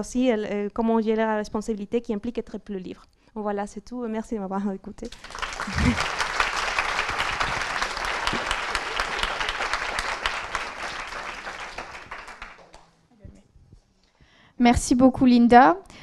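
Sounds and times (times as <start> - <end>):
audience applauding: 5.1 - 13.0.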